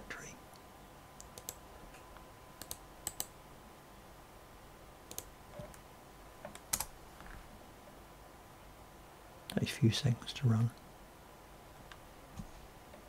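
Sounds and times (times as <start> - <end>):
faint background hum: 0.0 - 13.0
mouse and keyboard clicks: 2.6 - 3.3.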